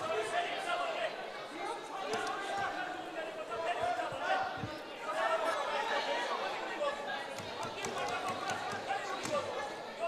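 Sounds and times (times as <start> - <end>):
many voices talking: 0.0 - 10.0.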